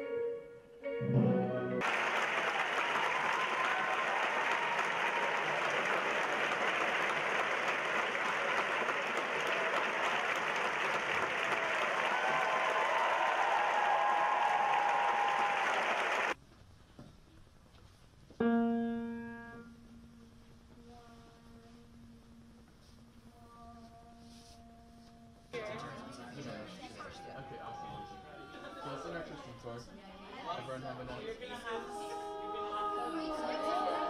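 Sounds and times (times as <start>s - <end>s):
piano note ringing: 0.0s - 1.8s
audience applauding: 1.8s - 16.4s
faint cheers: 1.8s - 16.4s, 27.0s - 29.0s.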